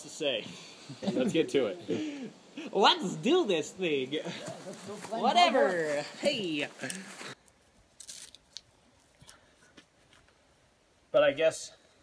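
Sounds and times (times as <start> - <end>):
scuffs and clicks on dry leaves: 8.0 - 8.7.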